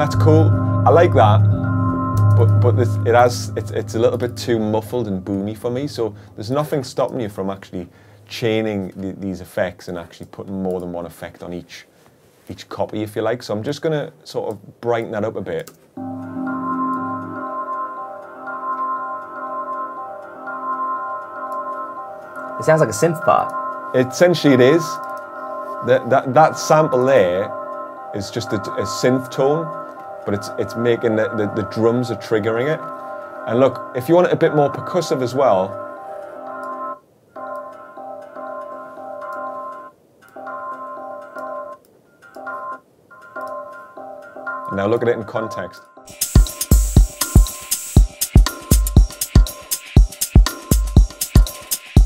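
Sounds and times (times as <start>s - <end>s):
organ-like drone chord: 0.0s - 6.6s
rhythmic synth-like chord: 0.0s - 7.8s, 16.0s - 52.0s.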